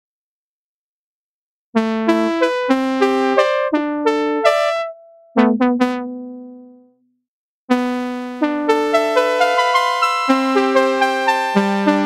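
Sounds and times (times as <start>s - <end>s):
synthesizer playing sustained notes: 2.7s - 6.8s.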